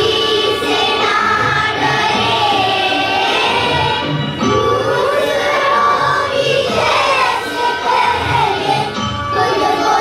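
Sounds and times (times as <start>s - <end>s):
children singing in unison: 0.0s - 10.0s.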